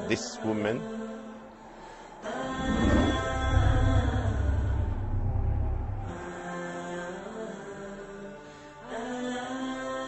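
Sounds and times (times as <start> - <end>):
chant-like sustained theme music: 0.0 - 10.0.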